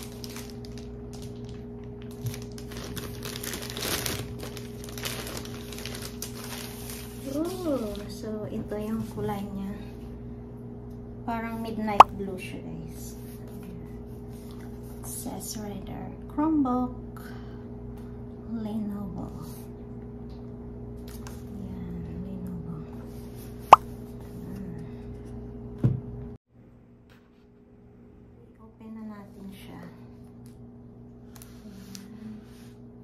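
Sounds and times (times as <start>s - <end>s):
plastic bag crinkling: 0.0s - 8.1s.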